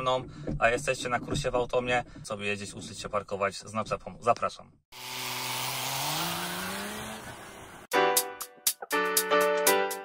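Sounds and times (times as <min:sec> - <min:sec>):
truck diesel engine accelerating: 0:05.1 - 0:07.9.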